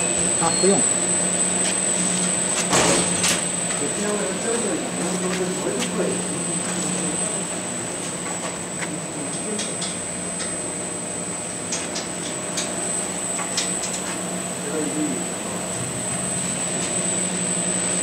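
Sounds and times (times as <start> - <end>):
heat press machine drone: 0.0 - 18.0
high machine whine: 0.0 - 18.0.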